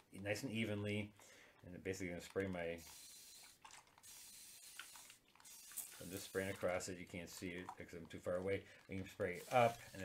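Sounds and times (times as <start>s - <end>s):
spray bottle hissing: 2.8s - 6.5s, 9.3s - 10.0s.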